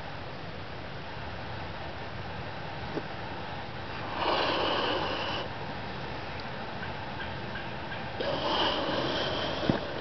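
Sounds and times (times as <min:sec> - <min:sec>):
person blowing into balloon: 0:08.2 - 0:10.0.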